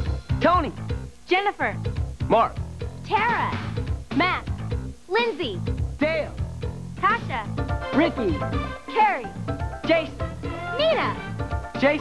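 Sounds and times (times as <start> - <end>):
upbeat tv theme music: 0.0 - 12.0.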